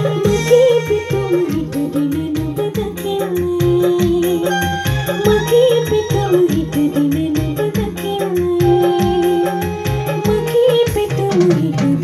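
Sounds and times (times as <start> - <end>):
hand-drum beat: 0.0 - 12.0
keyboard: 0.0 - 12.0
woman singing through microphone: 0.0 - 12.0.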